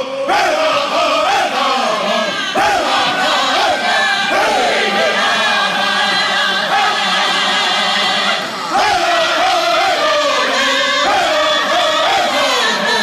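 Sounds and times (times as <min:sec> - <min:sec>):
voices singing together: 0:00.0 - 0:13.0.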